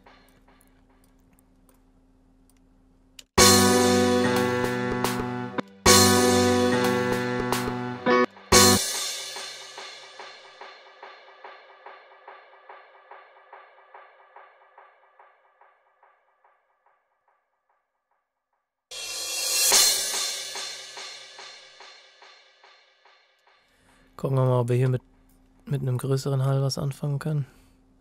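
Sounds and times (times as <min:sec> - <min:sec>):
crash cymbal with delay echoes: 0:03.4 - 0:16.1, 0:18.9 - 0:24.0.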